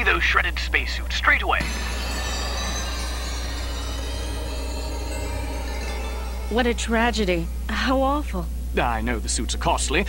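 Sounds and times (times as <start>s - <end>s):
constant low hum: 0.0s - 10.0s
synthesizer background music: 1.6s - 7.8s.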